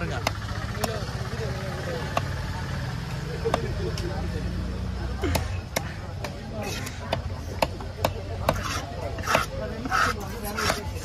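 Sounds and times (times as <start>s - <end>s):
cleaver chopping into wood: 0.0s - 1.1s, 2.0s - 2.4s, 3.4s - 4.0s, 5.2s - 10.9s.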